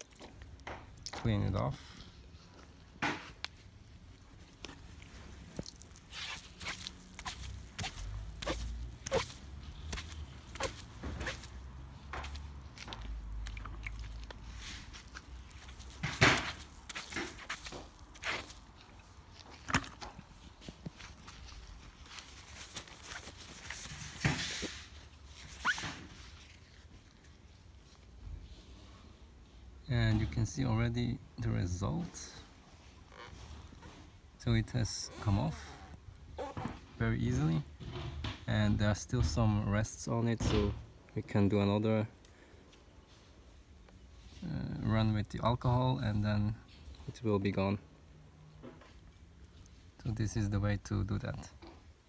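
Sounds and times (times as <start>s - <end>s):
wet sponge rubbing car paint: 4.4s - 13.5s.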